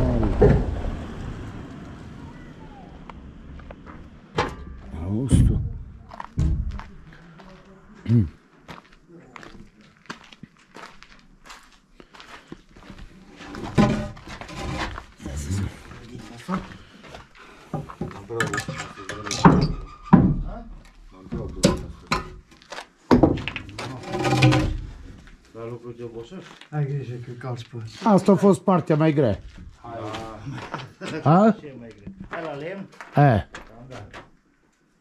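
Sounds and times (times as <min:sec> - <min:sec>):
indistinct voices: 0:00.0 - 0:08.4, 0:15.2 - 0:16.9.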